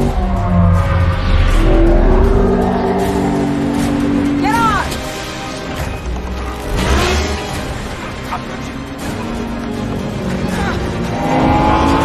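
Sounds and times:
airship engines droning: 0.0s - 12.0s
orchestral film score: 0.0s - 12.0s.

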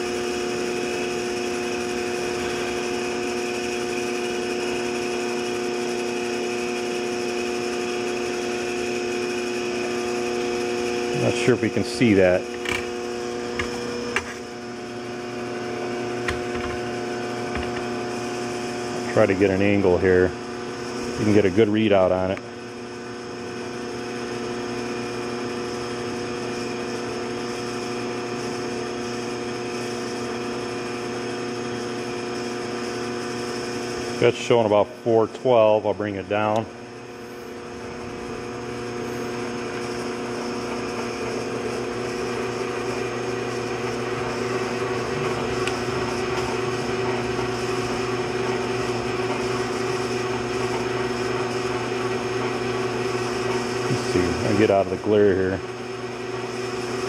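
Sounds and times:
machine motor hum: 0.0s - 57.0s.

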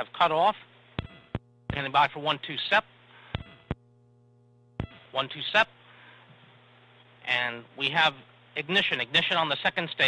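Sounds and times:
buzzy electrical hum: 0.0s - 10.0s.

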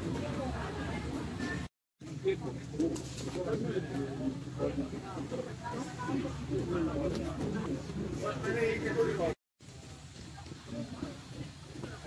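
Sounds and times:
indistinct low voices: 0.0s - 12.0s.

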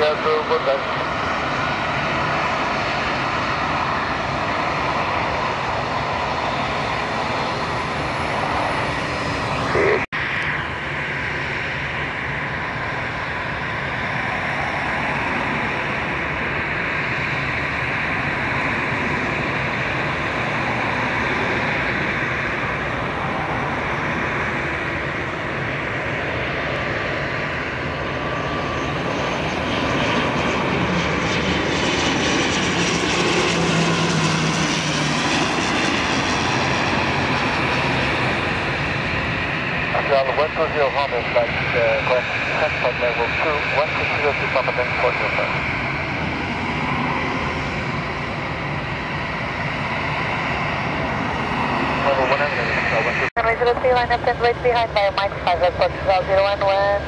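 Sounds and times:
jet airliner takeoff noise: 0.0s - 57.0s
turboprop engine and propeller drone: 0.0s - 57.0s.

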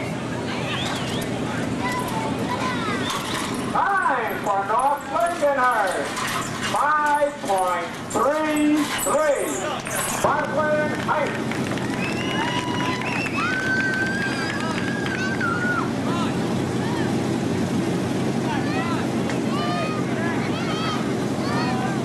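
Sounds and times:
distant voices calling and shouting: 0.0s - 17.4s
steady low hum: 0.0s - 22.0s.

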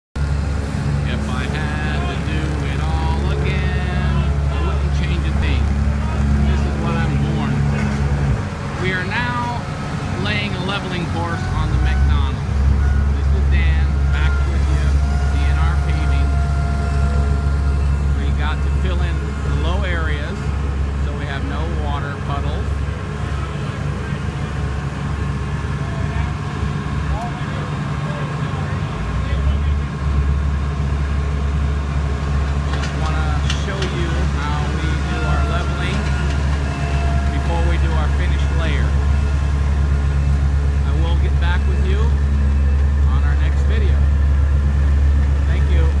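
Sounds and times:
diesel engines rumbling: 0.2s - 46.0s
indistinct voices: 0.7s - 46.0s.

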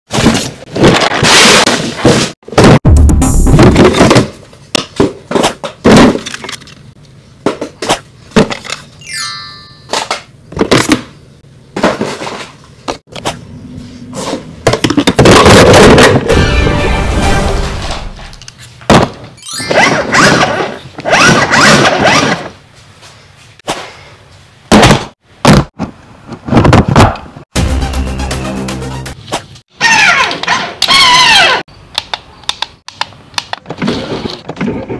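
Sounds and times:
hard plastic parts clattering: 3.8s - 8.9s
sharp plastic clicks: 31.9s - 33.7s.

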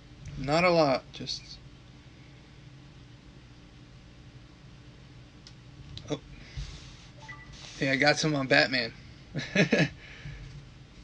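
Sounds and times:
faint low hum with hiss: 0.0s - 11.0s.

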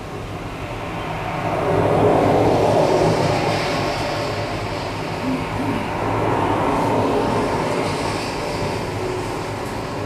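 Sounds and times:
dense noise drone: 0.0s - 10.0s
low hum: 0.0s - 10.0s.

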